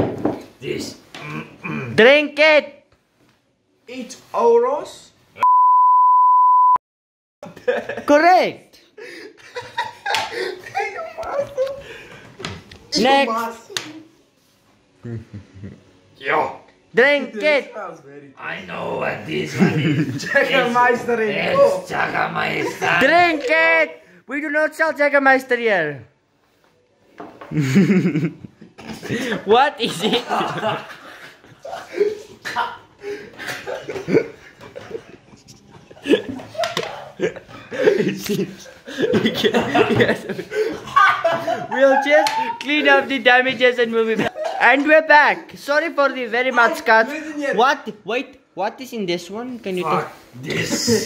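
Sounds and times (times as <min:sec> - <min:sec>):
man groaning: 0:01.2 - 0:02.0
censor bleep: 0:05.4 - 0:06.8.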